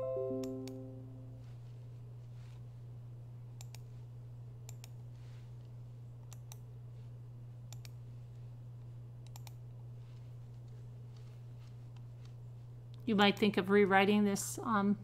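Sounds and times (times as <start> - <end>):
low hum: 0.0 - 13.0
computer mouse clicks: 3.6 - 3.9, 4.6 - 5.0, 6.2 - 6.7, 7.7 - 8.0, 9.2 - 9.6.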